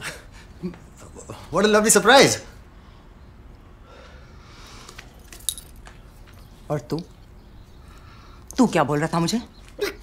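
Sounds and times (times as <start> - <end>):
light metallic clinks and jingle: 5.0 - 6.5.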